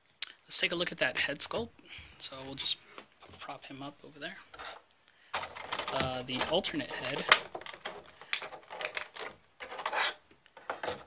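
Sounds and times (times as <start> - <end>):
plastic tray clicking and crackling: 5.3 - 11.0.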